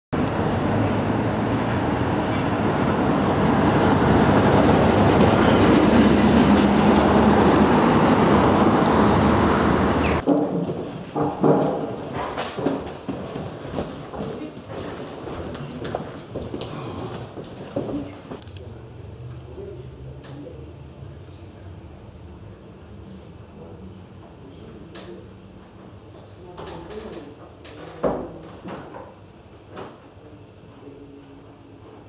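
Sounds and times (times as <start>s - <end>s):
tram rumbling past: 0.2s - 10.2s
indoor knocks: 10.2s - 13.9s.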